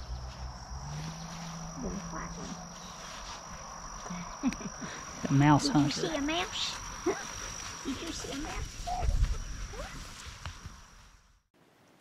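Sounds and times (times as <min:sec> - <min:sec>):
high-pitched insect drone: 0:00.0 - 0:11.2
person laughing: 0:04.1 - 0:05.0, 0:07.0 - 0:07.4.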